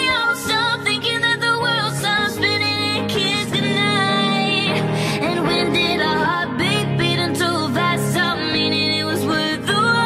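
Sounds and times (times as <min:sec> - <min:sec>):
instrumental backing: 0:00.0 - 0:10.0
woman singing pop song: 0:00.0 - 0:10.0.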